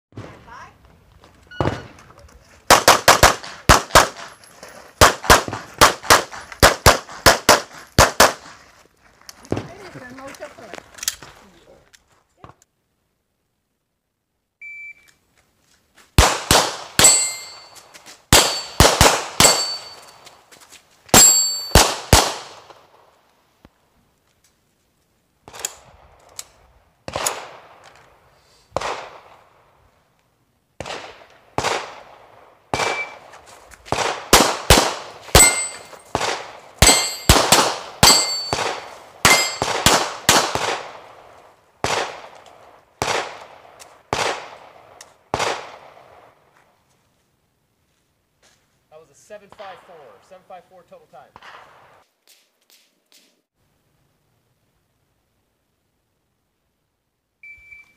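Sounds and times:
pistol shots: 0:02.7 - 0:04.4, 0:05.0 - 0:08.6, 0:16.2 - 0:17.7, 0:18.3 - 0:20.2, 0:21.1 - 0:22.9, 0:27.1 - 0:27.8, 0:28.8 - 0:29.4, 0:30.8 - 0:33.3, 0:33.9 - 0:41.2, 0:41.8 - 0:42.4, 0:43.0 - 0:46.1
electronic shot-timer beep: 0:14.6 - 0:15.1, 0:57.4 - 0:57.9
steel plates ringing: 0:17.0 - 0:17.8, 0:18.4 - 0:18.8, 0:19.4 - 0:20.3, 0:21.2 - 0:21.8, 0:35.4 - 0:36.1, 0:36.8 - 0:37.4, 0:38.0 - 0:38.6, 0:39.3 - 0:39.7.

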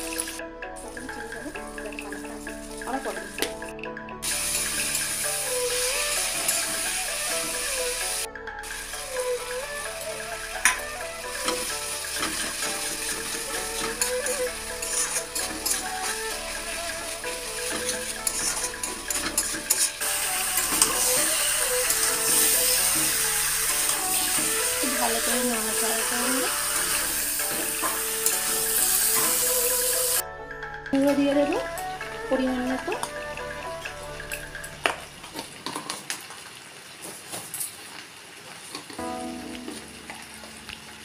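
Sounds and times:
vegetables sizzling in a pan: 0:00.0 - 0:03.6, 0:04.2 - 0:30.2, 0:31.1 - 0:41.0
background music: 0:00.0 - 0:35.2, 0:39.0 - 0:41.0
spatula stirring: 0:04.2 - 0:08.3, 0:09.1 - 0:30.2.

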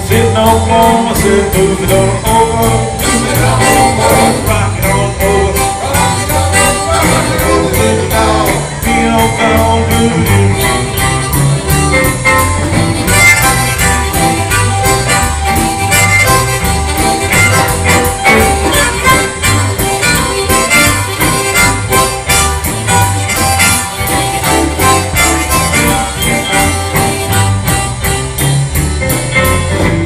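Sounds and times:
drum beat: 0:00.0 - 0:30.0
electric bass: 0:00.0 - 0:30.0
electric guitar: 0:00.0 - 0:30.0.

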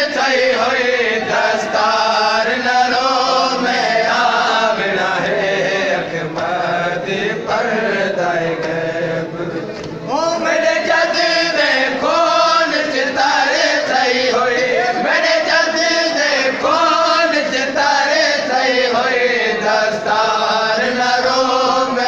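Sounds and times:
men chanting a lament: 0:00.0 - 0:22.0.

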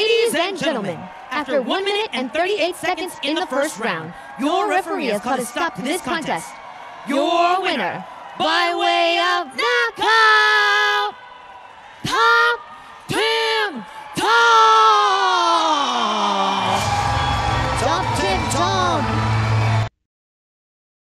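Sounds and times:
announcer shouting: 0:00.0 - 0:06.5, 0:07.1 - 0:11.2, 0:12.0 - 0:16.5, 0:17.7 - 0:19.2.

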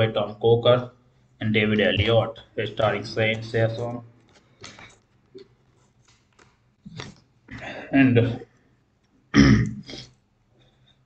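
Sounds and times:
man clearing his throat: 0:09.4 - 0:10.1.

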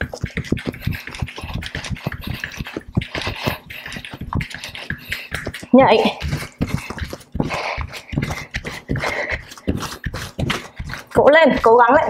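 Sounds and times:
woman breathing hard: 0:00.0 - 0:11.2
bare feet thudding on mat: 0:00.0 - 0:12.0.

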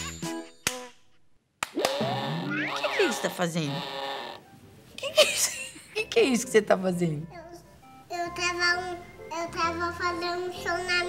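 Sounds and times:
person making wordless sliding sounds: 0:01.8 - 0:03.0.

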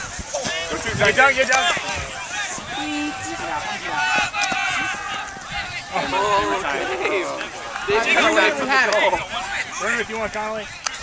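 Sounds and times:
players shouting and calling: 0:00.0 - 0:11.0.

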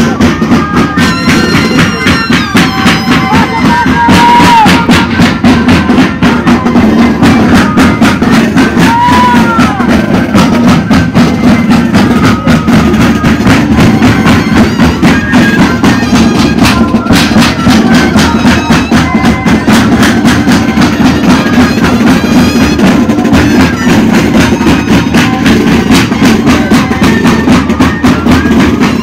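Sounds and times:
cane flutes droning melody: 0:00.0 - 0:29.0
large drums beating: 0:00.0 - 0:29.0.

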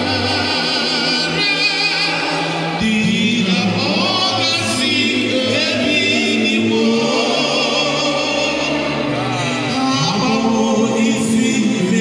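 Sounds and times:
gospel choir singing: 0:00.0 - 0:12.0.

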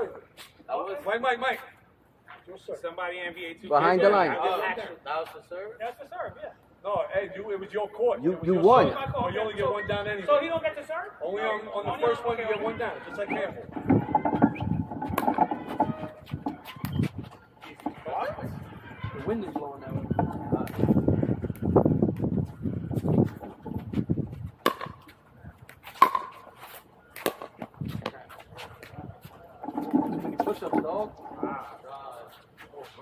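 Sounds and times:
players talking: 0:02.4 - 0:24.0, 0:24.8 - 0:33.0
paddle striking plastic ball: 0:24.6 - 0:25.0.

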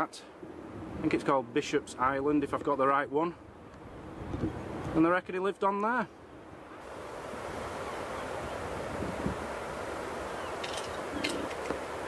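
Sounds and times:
surf washing: 0:00.0 - 0:12.0
wind rushing on microphone: 0:00.4 - 0:01.4, 0:03.5 - 0:05.1, 0:06.6 - 0:12.0.

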